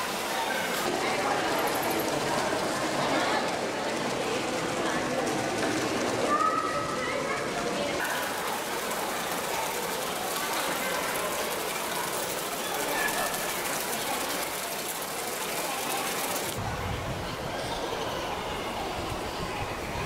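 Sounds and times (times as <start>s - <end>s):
crowd talking indistinctly: 0.0s - 20.0s.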